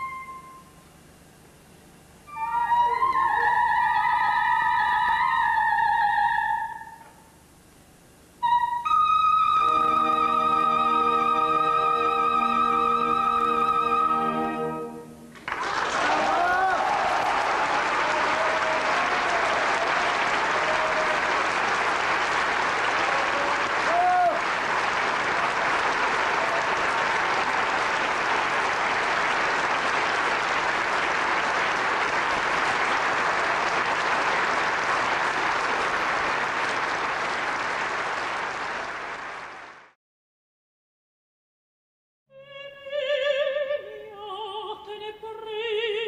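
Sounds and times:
audience applauding: 15.3s - 40.0s.

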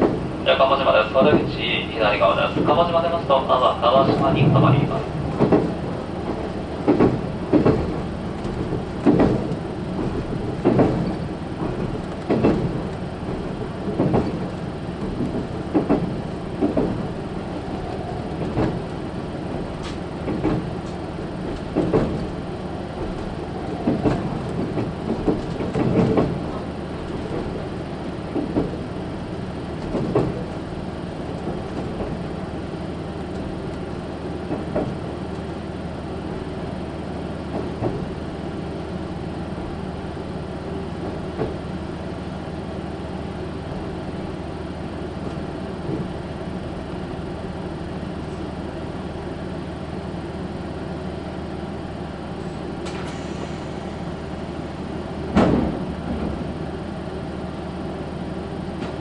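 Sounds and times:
wheels clacking over rail joints: 0.0s - 41.8s
railcar running rumble: 0.0s - 59.0s.

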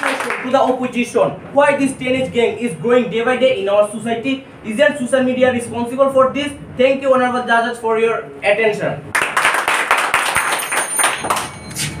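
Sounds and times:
audience applauding: 0.0s - 0.5s, 9.1s - 11.6s.

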